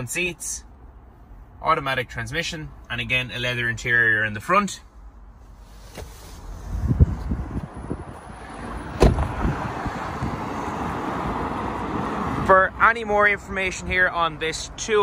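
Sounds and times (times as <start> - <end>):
traffic: 0.0 - 15.0
wind: 0.0 - 15.0
car door slamming: 8.9 - 9.6.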